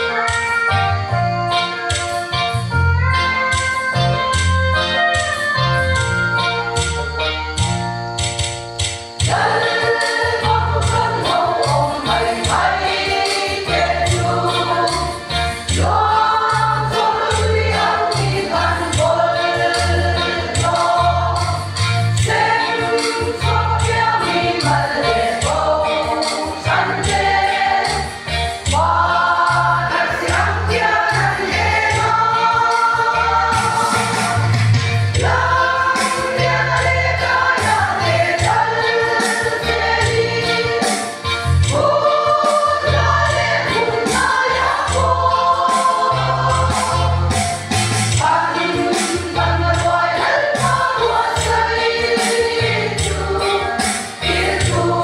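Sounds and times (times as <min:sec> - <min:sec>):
women's choir singing a hymn: 0:09.2 - 0:55.0.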